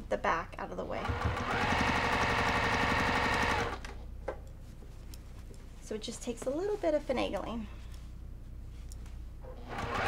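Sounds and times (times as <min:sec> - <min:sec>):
sewing machine stitching: 0:01.0 - 0:03.8, 0:09.6 - 0:10.0.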